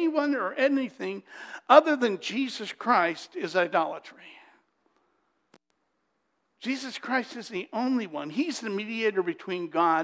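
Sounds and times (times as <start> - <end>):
man speaking: 0.0 - 4.6, 6.6 - 10.0.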